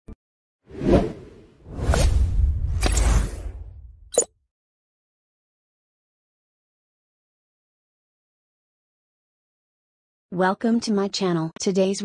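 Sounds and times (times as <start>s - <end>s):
whoosh: 0.7s - 4.1s.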